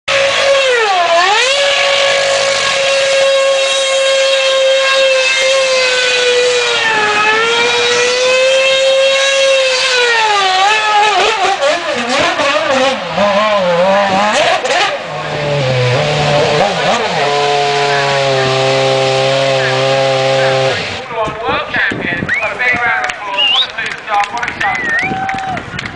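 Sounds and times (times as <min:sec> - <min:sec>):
racing car engine revving: 0:00.1 - 0:21.4.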